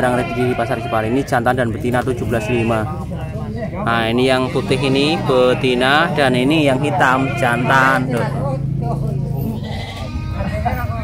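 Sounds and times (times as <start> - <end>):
goat bleating: 0.0 - 11.0
people talking: 0.0 - 11.0.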